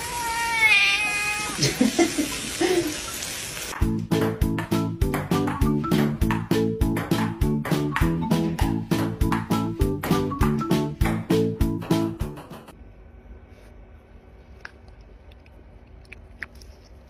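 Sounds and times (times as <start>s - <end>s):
cat meowing: 0.0s - 1.6s
music with steady beat: 3.8s - 12.7s.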